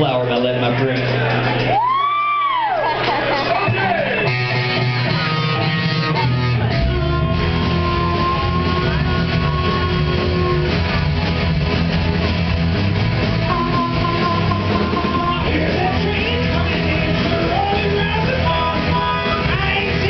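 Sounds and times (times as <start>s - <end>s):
bass low end: 3.7s - 20.0s
harmonica long notes: 3.8s - 18.2s.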